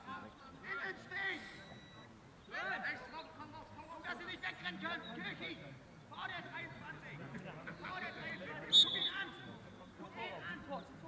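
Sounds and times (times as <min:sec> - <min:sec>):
referee's whistle blast: 0:08.7 - 0:09.3.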